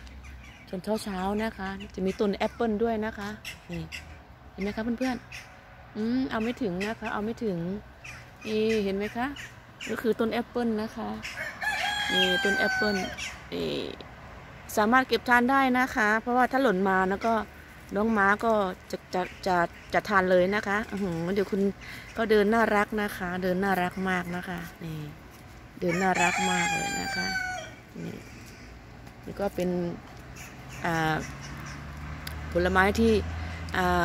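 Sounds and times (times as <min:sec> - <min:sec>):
rooster crowing: 0:11.3 - 0:13.3, 0:25.8 - 0:27.8
crow cawing: 0:26.0 - 0:28.8.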